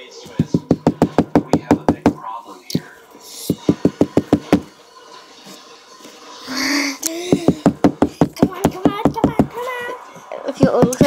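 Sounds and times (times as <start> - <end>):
fist knocking on a tabletop: 0.4 - 2.2, 3.5 - 4.7, 7.3 - 9.6.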